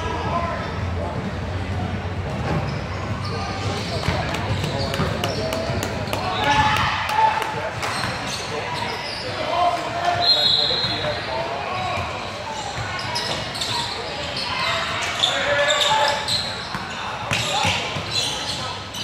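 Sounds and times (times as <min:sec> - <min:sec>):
murmur of spectators' voices: 0:00.0 - 0:19.0.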